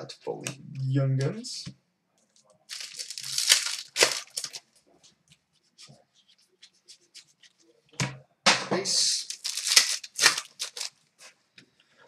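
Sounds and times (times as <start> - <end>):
cards ticking and rustling: 2.3 - 4.7, 9.2 - 11.0
foil wrapper tearing and crinkling: 2.7 - 4.6, 9.2 - 11.0.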